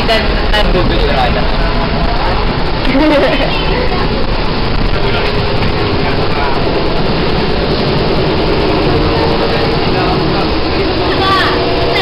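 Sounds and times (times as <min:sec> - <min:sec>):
people chattering: 0:00.0 - 0:12.0
vehicle running rumble: 0:00.0 - 0:12.0.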